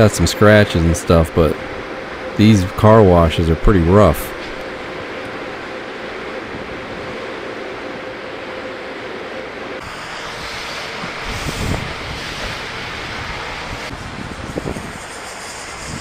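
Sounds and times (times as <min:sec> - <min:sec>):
rushing wind noise: 0:09.8 - 0:16.0
wind buffeting: 0:09.8 - 0:16.0.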